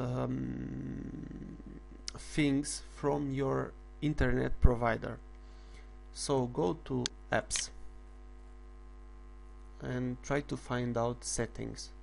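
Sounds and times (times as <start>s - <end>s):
man speaking: 0.0s - 5.2s, 6.2s - 7.8s, 9.8s - 12.0s
mains hum: 0.0s - 12.0s.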